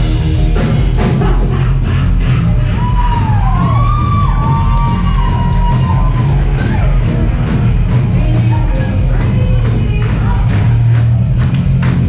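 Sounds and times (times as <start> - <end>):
rock band playing loud: 0.0 - 12.0.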